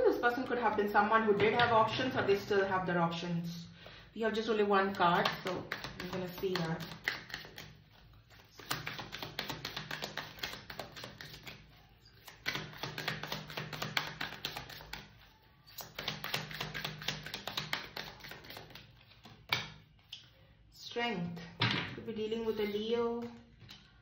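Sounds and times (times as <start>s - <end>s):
cards being shuffled: 5.2s - 15.1s, 15.7s - 20.1s.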